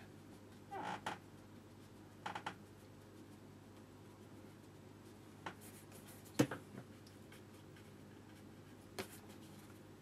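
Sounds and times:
brush strokes on paper: 0.0s - 9.9s.

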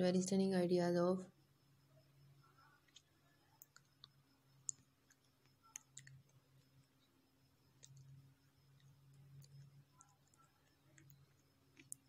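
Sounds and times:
faint low hum: 0.0s - 12.0s
faint irregular clicks: 2.8s - 12.0s.

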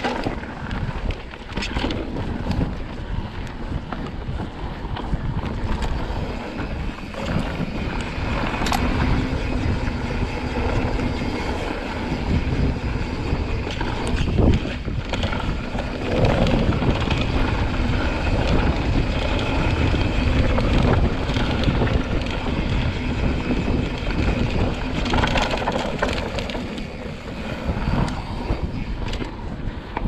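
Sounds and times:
bike clicks and rattles: 0.0s - 30.0s
wind rushing over microphone: 0.0s - 30.0s.

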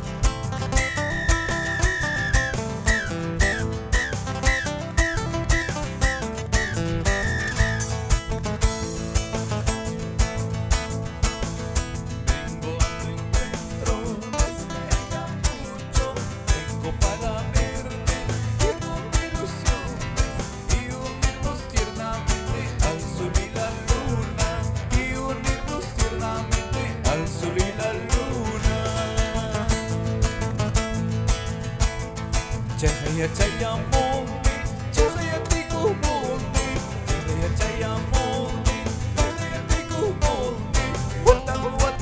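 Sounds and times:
electric bass: 0.0s - 42.0s
nylon-string guitars: 0.0s - 42.0s.

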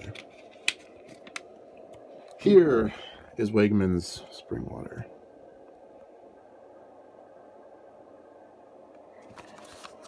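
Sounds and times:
faint background hum: 0.0s - 10.0s.

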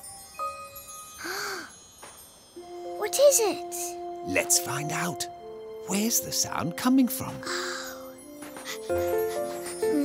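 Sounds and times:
icicles tinkling: 0.0s - 3.5s.

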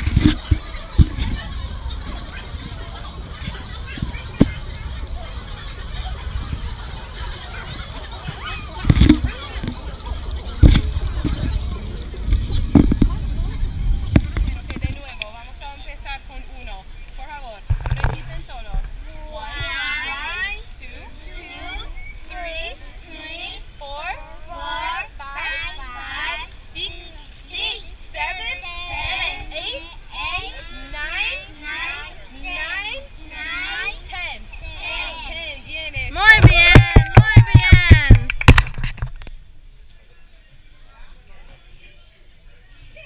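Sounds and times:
girls talking: 18.2s - 38.3s
woman talking: 35.1s - 38.2s
quick hand claps: 36.4s - 38.8s.

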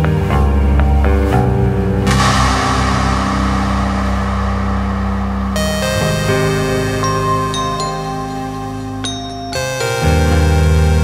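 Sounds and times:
background music sustained notes: 1.8s - 11.0s
hissing swell of noise: 2.1s - 8.8s.

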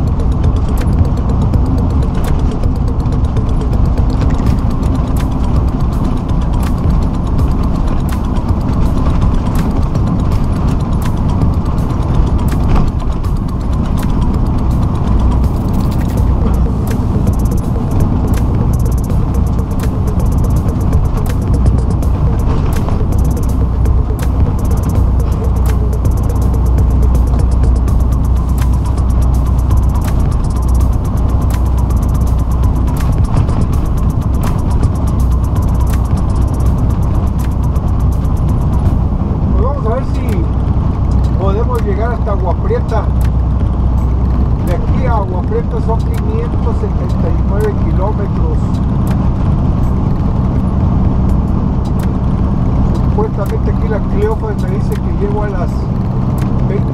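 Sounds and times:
small clicks and rattles: 0.0s - 39.0s
truck engine and road drone: 0.0s - 56.9s.

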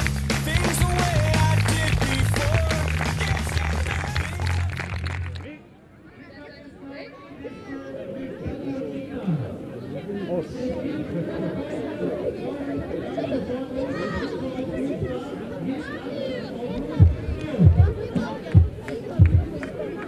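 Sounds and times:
people chattering: 0.4s - 20.0s.

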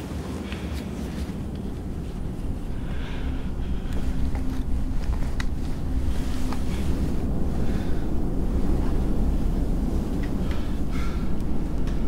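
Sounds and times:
wind buffeting microphone: 0.9s - 12.0s.

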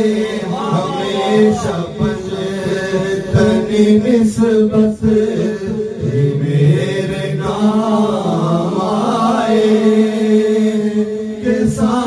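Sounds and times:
men singing in chanting style: 0.0s - 12.0s.

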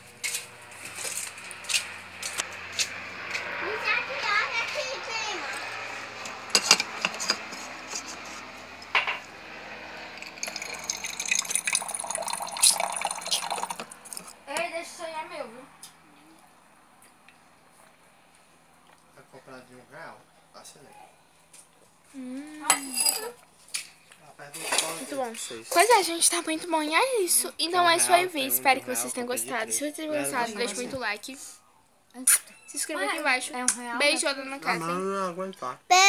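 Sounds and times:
children's voices: 3.6s - 5.9s
water running into metal cup: 10.1s - 14.3s
cup clinking and knocking: 10.2s - 13.9s.

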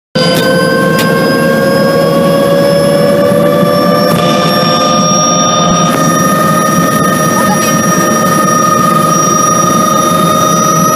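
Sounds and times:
helicopter turbine whine: 0.2s - 10.9s
low rotor rumble: 0.2s - 10.9s.

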